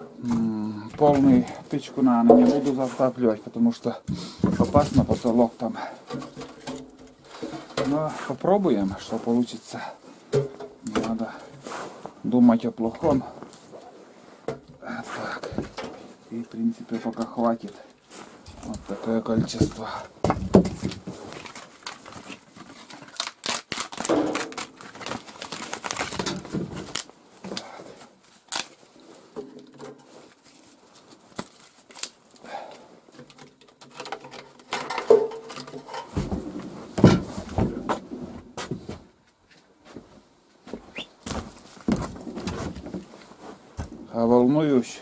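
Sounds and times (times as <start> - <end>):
rustling: 0.2 - 45.0
wood knocking against wood and steel: 19.3 - 21.2.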